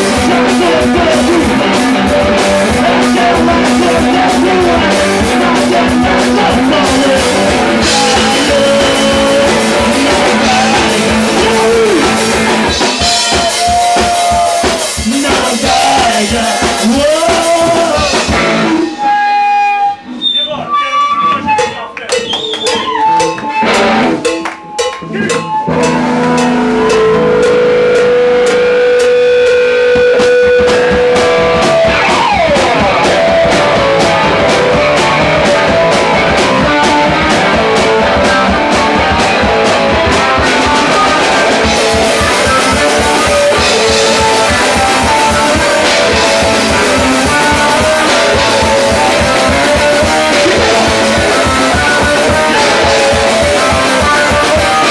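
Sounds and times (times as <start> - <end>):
live rock band: 0.0 - 54.9.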